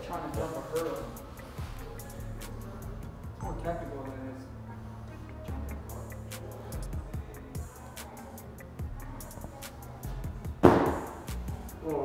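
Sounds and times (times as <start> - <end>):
background music: 0.0 - 12.0
feet thudding on artificial turf: 10.6 - 11.3.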